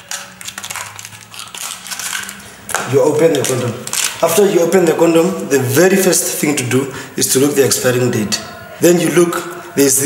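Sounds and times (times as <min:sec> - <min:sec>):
wrapper crinkling: 0:00.0 - 0:04.8.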